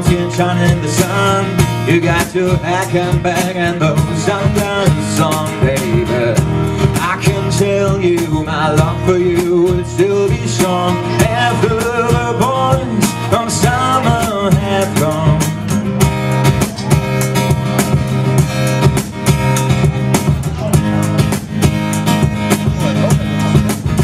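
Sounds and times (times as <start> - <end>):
man singing: 0.0 - 17.2
cajon beat: 0.0 - 24.0
strummed acoustic guitar: 0.0 - 24.0.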